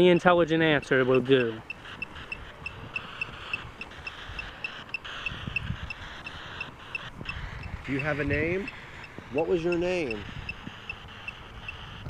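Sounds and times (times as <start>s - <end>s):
high-pitched pips: 0.0s - 12.0s.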